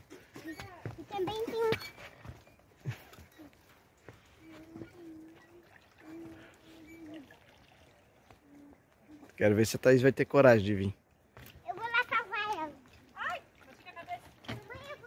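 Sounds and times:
footsteps on wooden planks: 0.0 - 5.4, 11.0 - 15.0
drawn-out held sounds: 0.0 - 15.0.

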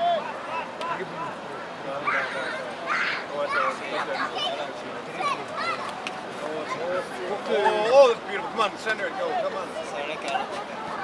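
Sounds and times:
people shouting: 0.0 - 0.8.

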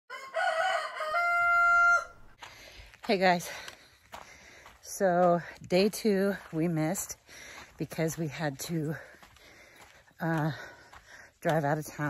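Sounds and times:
rooster crowing: 0.1 - 2.4.

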